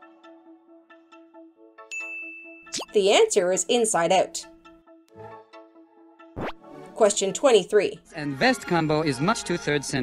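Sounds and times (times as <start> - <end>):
high bell-like ding: 1.9 - 2.8.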